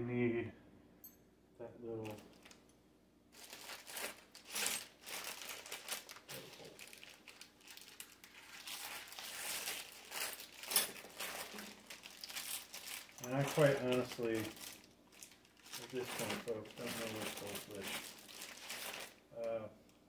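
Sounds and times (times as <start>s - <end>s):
plastic packaging crinkling: 2.0s - 2.6s, 3.3s - 19.3s.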